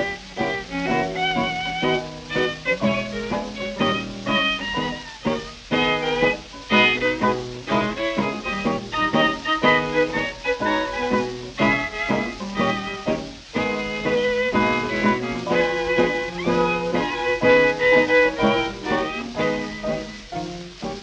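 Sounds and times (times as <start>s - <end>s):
dance band swing music: 0.0s - 21.0s.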